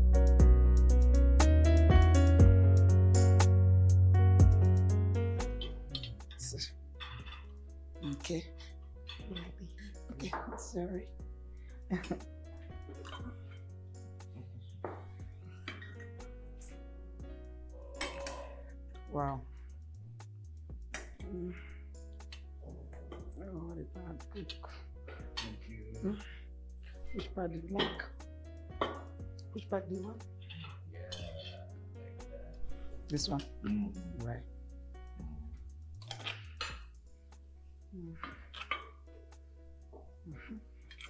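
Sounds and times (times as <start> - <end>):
film music with sustained notes: 0.0 - 41.0
clinks of plates and cutlery: 7.0 - 8.3, 27.8 - 28.1, 28.8 - 29.1, 38.2 - 39.0
person speaking a word: 8.0 - 8.6, 9.2 - 11.1, 19.1 - 19.5, 21.2 - 21.7, 22.7 - 26.4, 29.5 - 34.5, 37.9 - 38.3, 40.3 - 40.6.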